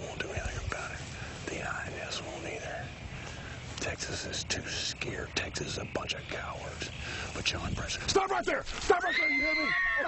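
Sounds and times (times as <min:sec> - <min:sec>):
man whispering: 0:00.0 - 0:08.2.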